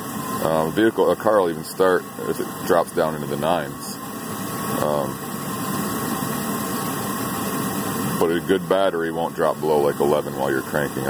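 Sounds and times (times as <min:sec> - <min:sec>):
van engine idling: 0:00.0 - 0:11.0.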